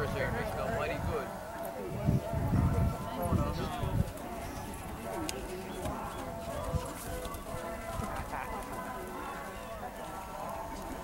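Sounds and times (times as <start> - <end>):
distant spectators' voices: 0.0 - 11.0
horse hoofbeats on soft dirt: 3.0 - 11.0.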